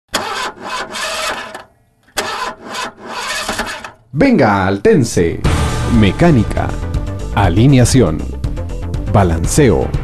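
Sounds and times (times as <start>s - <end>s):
car starter motor cranking: 0.1s - 4.1s.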